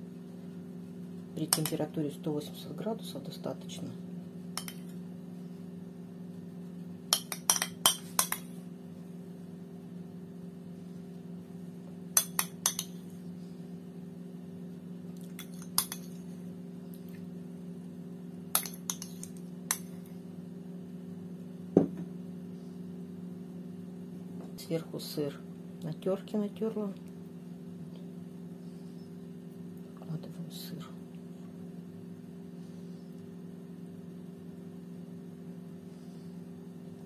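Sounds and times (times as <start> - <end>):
steady low hum: 0.0 - 37.0
spoon clinking on dish: 4.6 - 4.9, 7.1 - 8.5, 12.2 - 13.0, 15.4 - 16.2, 18.6 - 19.9.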